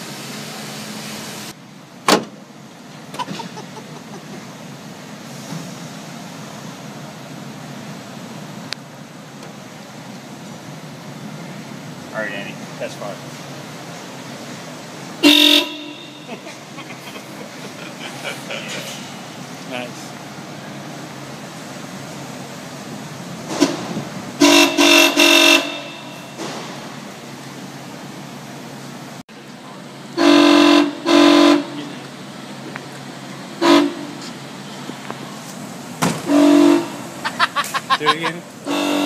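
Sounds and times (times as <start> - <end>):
car horn honking: 15.2 - 16.6, 24.4 - 26.4, 30.2 - 32.0, 33.6 - 34.2, 36.2 - 37.1, 38.6 - 39.0.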